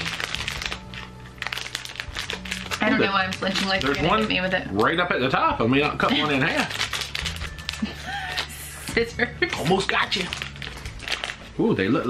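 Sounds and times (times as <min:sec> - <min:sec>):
plastic wrapper crinkling: 0:00.0 - 0:05.1, 0:05.7 - 0:08.6, 0:09.5 - 0:12.0.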